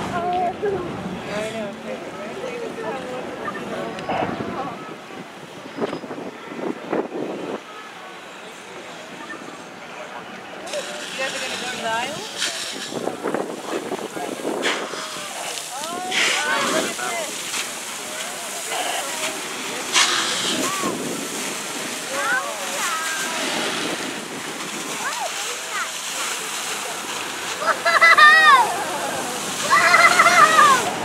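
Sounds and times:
bystanders talking: 0:00.0 - 0:31.0
water spray splashing onto water: 0:10.6 - 0:31.0.

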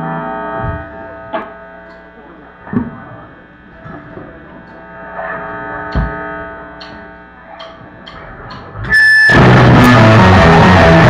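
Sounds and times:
guitar chord ringing: 0:08.9 - 0:11.0
loud rock band playing: 0:08.9 - 0:11.0.

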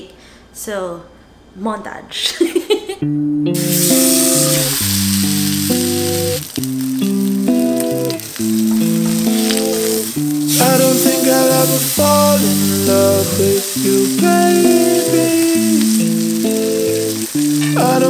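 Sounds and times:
background music of held chords: 0:03.0 - 0:18.0
steak sizzling in a skillet: 0:03.6 - 0:18.0.

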